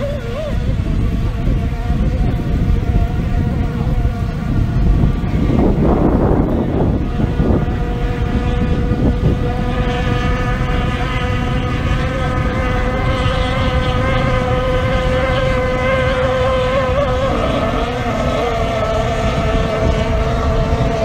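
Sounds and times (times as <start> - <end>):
boat engines high-pitched whine: 0.0 - 21.0
wind rumble on microphone: 0.0 - 21.0.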